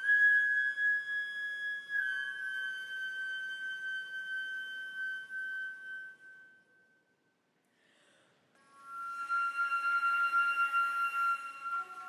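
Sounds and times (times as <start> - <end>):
flute holding a high note: 8.6 - 12.0.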